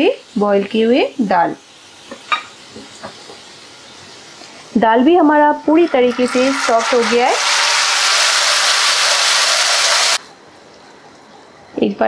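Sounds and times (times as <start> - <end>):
onions sizzling in hot oil: 0.0 - 10.2.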